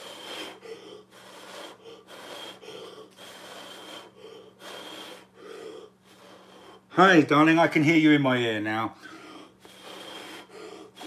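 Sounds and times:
short puffs of breath: 0.0s - 6.9s, 9.0s - 11.0s.

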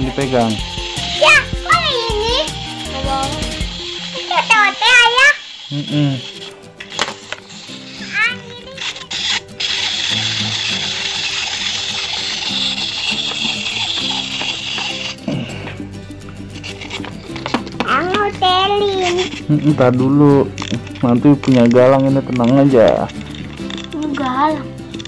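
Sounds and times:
clockwork toy whirring: 0.0s - 15.8s, 16.5s - 25.0s
background music: 0.0s - 25.0s.

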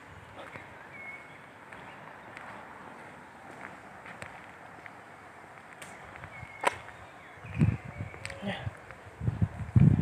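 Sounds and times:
footsteps on paving stones: 0.0s - 10.0s.

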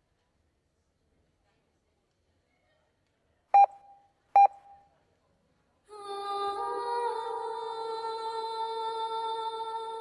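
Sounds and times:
short electronic beeps: 3.6s - 4.8s.

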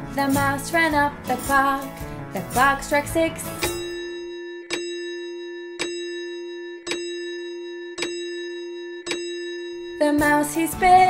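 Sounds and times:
clock chime striking: 3.6s - 11.0s.

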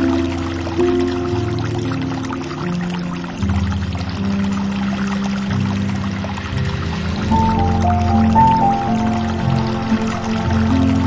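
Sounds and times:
slow instrumental music: 0.0s - 11.0s
trickling pouring water: 0.0s - 11.0s.

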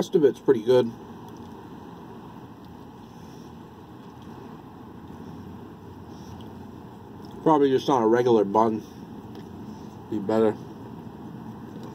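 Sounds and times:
low rumble inside truck cab: 0.0s - 11.9s.

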